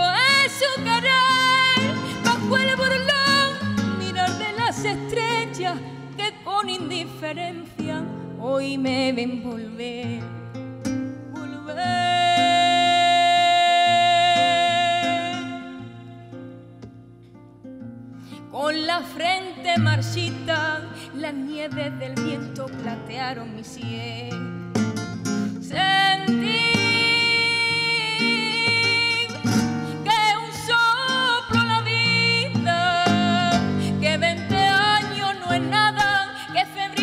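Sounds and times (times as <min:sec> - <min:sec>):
woman singing with vibrato: 0:00.0 - 0:10.4, 0:11.3 - 0:16.3, 0:18.5 - 0:24.5, 0:25.6 - 0:37.0
guitar accompaniment: 0:00.0 - 0:37.0.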